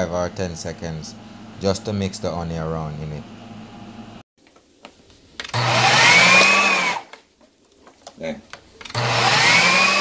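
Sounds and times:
food processor motor whining: 0:05.5 - 0:07.1, 0:08.8 - 0:10.0.

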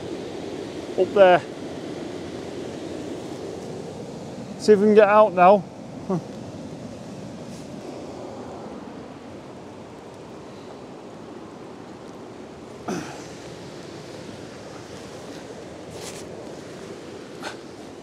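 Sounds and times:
river pouring over a weir: 0:00.0 - 0:18.0
knocks and scuffs on muddy bank: 0:15.0 - 0:16.7.

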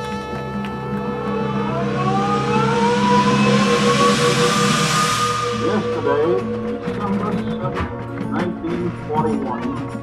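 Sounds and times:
brass section sustained chord: 0:00.0 - 0:07.6
rush of noise: 0:00.0 - 0:07.8.

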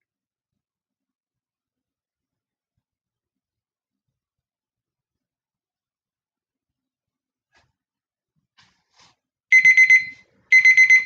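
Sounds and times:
timer alarm beeping: 0:09.5 - 0:11.0.

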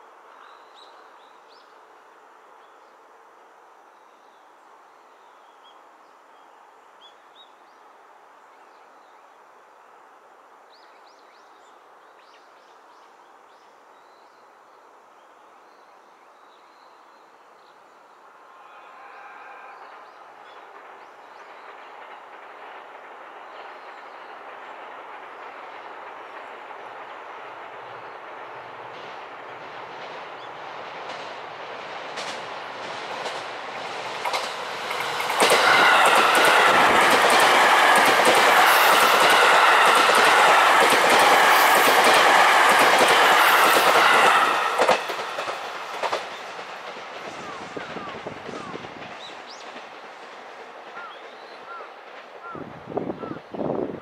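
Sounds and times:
train passing: 0:17.8 - 0:54.0
wheels clicking over rail joints: 0:32.2 - 0:52.6.

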